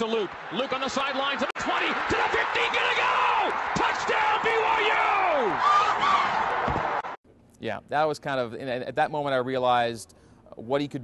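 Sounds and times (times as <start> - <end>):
announcers yelling excitedly: 0.0 - 7.1
stadium crowd cheering: 0.0 - 7.2.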